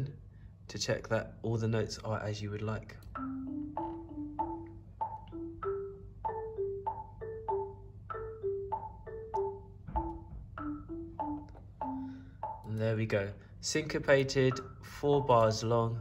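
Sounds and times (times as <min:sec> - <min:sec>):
sampled marimba melody: 0:03.0 - 0:16.0
low knock: 0:09.8 - 0:10.8.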